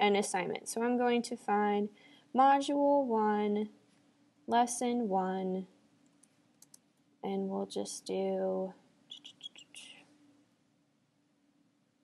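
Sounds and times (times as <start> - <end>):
faint steady hum: 0.0 - 12.0
computer keyboard keystrokes: 6.1 - 6.8.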